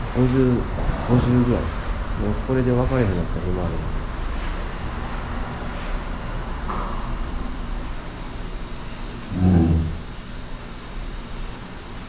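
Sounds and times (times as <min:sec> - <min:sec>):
low rumbling background noise: 0:00.0 - 0:12.0
low grunt-like voice: 0:09.2 - 0:10.1.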